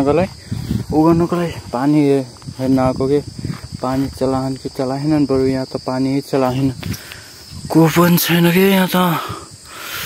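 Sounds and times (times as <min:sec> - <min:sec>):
young man's voice: 0:00.0 - 0:06.8, 0:07.6 - 0:09.6
high insect drone: 0:00.0 - 0:10.0.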